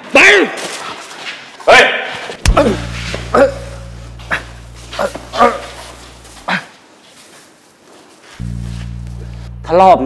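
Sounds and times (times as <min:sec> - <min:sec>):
low steady hum: 0:02.4 - 0:06.5, 0:08.4 - 0:10.0.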